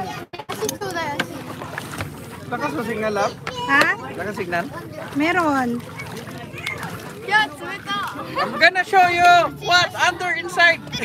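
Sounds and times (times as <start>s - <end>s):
people talking and calling: 0.0s - 11.0s.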